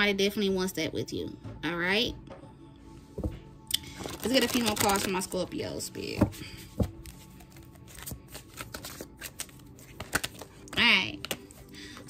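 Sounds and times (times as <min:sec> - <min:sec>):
cards being shuffled: 0:04.0 - 0:05.3, 0:06.2 - 0:12.0.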